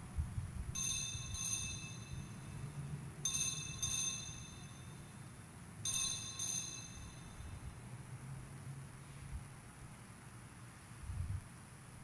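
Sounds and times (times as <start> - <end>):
altar bells ringing: 0.8 - 5.2, 5.8 - 7.6.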